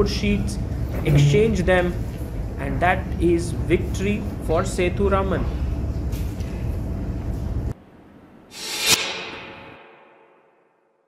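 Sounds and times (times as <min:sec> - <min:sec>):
hall room noise: 0:00.8 - 0:02.6
whoosh into sharp hit: 0:08.5 - 0:11.0.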